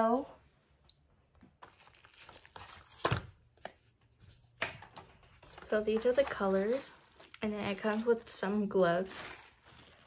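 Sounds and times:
plastic packaging rustling: 1.6 - 3.4, 4.8 - 10.0.

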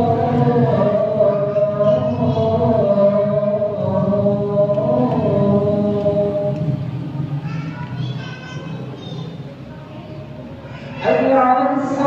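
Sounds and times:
man singing call to prayer: 0.0 - 6.9, 11.0 - 12.0.

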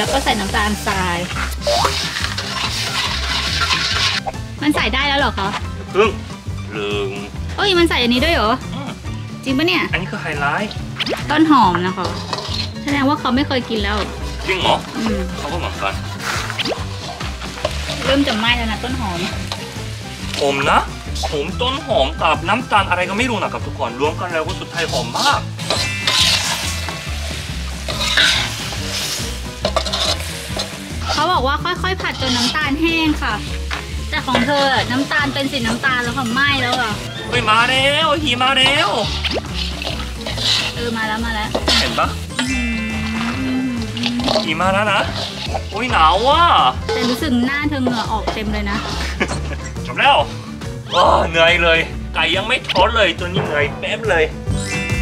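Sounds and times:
metal ladle scraping a wok: 0.0 - 4.4, 10.6 - 13.1, 14.0 - 21.4, 24.8 - 49.8
food sizzling in a wok: 0.0 - 53.2.

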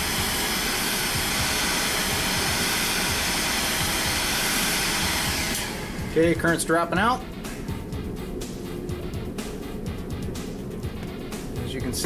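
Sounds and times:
heat gun blowing: 0.0 - 8.0.

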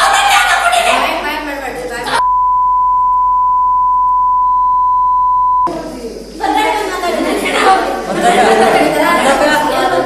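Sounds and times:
electronic censor bleep: 2.2 - 5.7.

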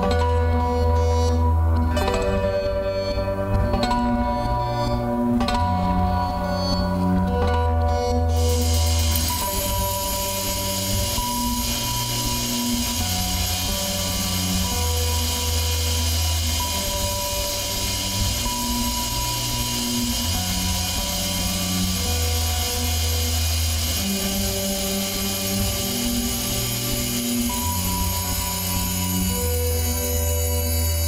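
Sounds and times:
ambient instrumental music: 0.0 - 31.0.

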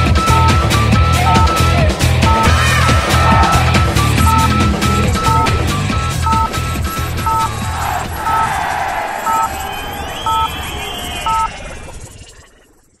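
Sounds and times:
two-tone beep: 0.0 - 0.6, 1.2 - 2.6, 3.2 - 7.5, 9.3 - 9.5, 10.3 - 10.5, 11.3 - 11.5
electronic theme music: 0.0 - 10.5
gliding synth sweeps: 2.4 - 8.5.

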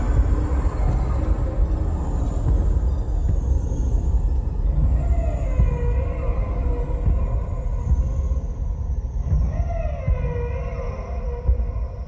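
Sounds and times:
low rumbling throb: 0.0 - 12.0.

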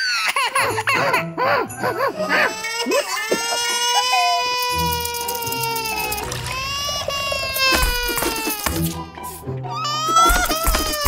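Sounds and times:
cartoon music: 0.6 - 11.0.

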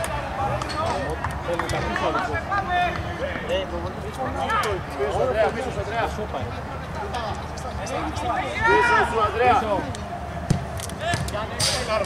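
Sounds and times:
players' voices: 0.0 - 12.0
football being kicked: 10.5 - 11.3.

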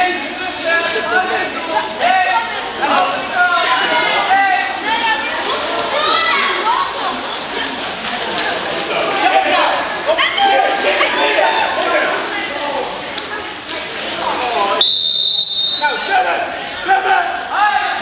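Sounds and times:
young voices shouting: 0.9 - 7.0, 9.0 - 13.0.

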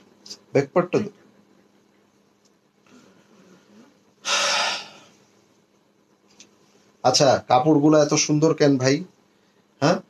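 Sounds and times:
man exhaling loudly: 4.2 - 5.1.

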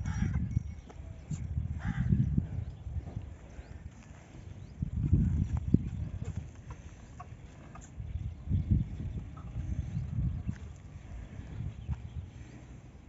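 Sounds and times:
hooves stepping on dirt: 0.0 - 13.0.

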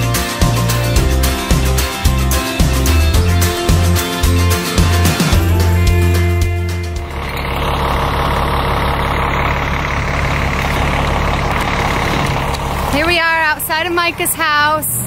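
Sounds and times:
music: 0.0 - 7.4
road traffic rushing: 0.0 - 15.0
woman speaking: 12.9 - 15.0.

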